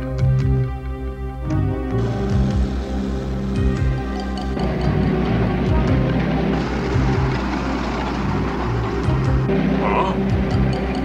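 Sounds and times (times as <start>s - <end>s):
semi truck engine driving past: 2.0s - 11.0s.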